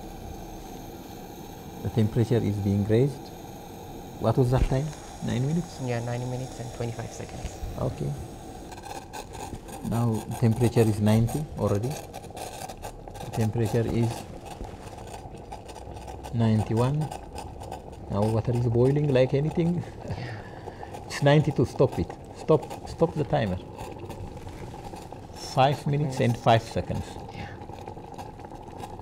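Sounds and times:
bubbles crackling: 0:00.0 - 0:29.0
water heating in a kettle: 0:00.0 - 0:29.0.

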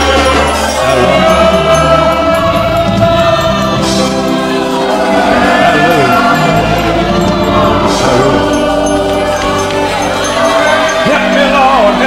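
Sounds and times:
band sustained chords: 0:00.0 - 0:12.0
choir singing gospel: 0:00.0 - 0:12.0.

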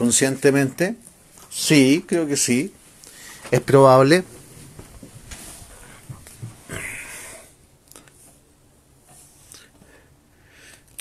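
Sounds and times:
breathy exhale or sniff: 0:06.7 - 0:07.6.

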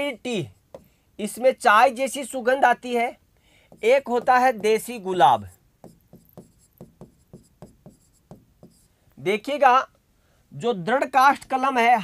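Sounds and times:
marker pen writing on a board: 0:00.3 - 0:01.0, 0:03.7 - 0:08.9.

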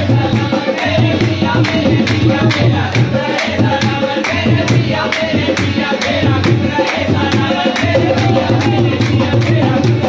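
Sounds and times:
devotional singing: 0:00.0 - 0:10.0
sustained pitched accompaniment: 0:00.0 - 0:10.0.

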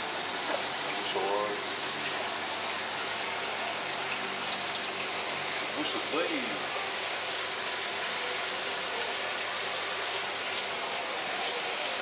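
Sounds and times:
water rushing in a tank: 0:00.0 - 0:12.0.

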